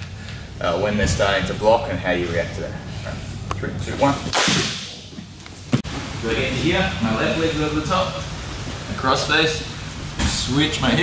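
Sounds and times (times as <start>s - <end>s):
sharp slap: 4.3s - 5.0s.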